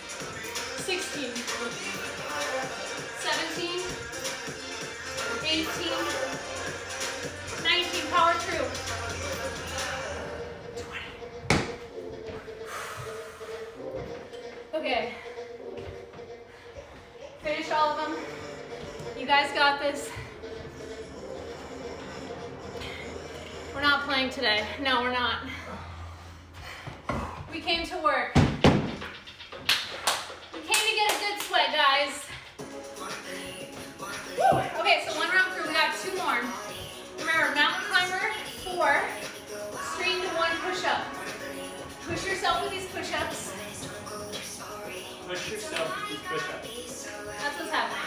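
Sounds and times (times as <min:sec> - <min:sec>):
faint background music: 0:00.0 - 0:48.0
medicine ball thumping on floor: 0:11.4 - 0:11.8, 0:28.3 - 0:29.0
hand claps: 0:29.6 - 0:31.6.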